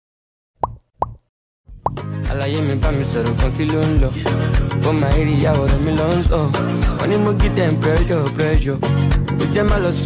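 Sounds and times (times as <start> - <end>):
music: 1.7 - 10.0.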